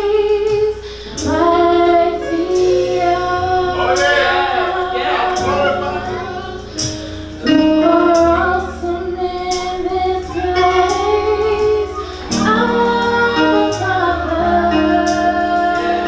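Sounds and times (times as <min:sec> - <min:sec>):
sustained bass line: 0:00.0 - 0:16.0
women singing worship song: 0:00.0 - 0:16.0.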